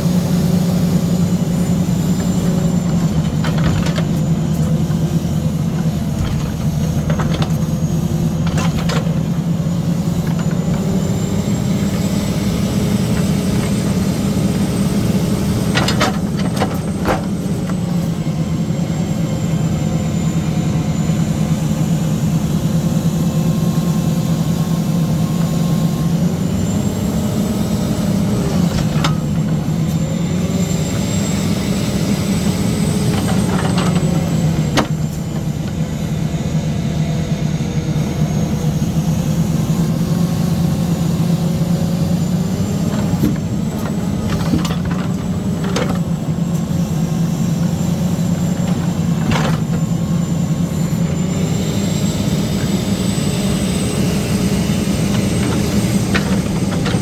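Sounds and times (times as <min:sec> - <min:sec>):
diesel engine running: 0:00.0 - 0:57.0
hydraulic whine: 0:00.0 - 0:57.0.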